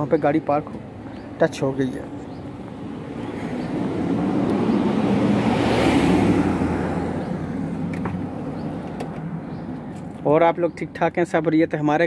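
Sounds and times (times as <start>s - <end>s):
low vehicle hum: 0.0s - 11.0s.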